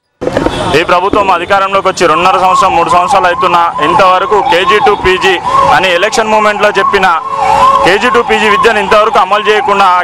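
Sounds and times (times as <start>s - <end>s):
siren wailing: 0.2s - 10.0s
man speaking: 0.6s - 7.2s.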